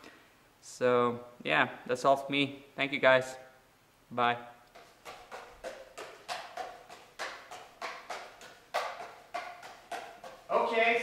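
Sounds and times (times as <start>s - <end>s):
juggling clubs clacking into hands: 4.7s - 10.6s.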